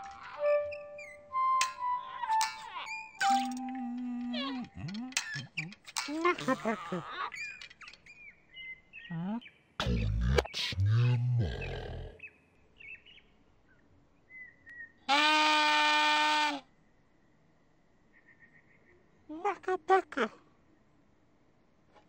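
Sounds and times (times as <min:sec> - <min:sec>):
high cartoon chirps and squeaks: 0:00.0 - 0:08.2
low babbling wordless voice: 0:03.8 - 0:07.1, 0:09.1 - 0:12.2, 0:19.3 - 0:20.4.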